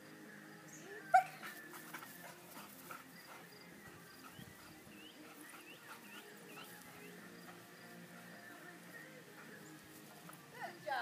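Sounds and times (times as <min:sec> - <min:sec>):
dog yelping: 0:01.1 - 0:01.5.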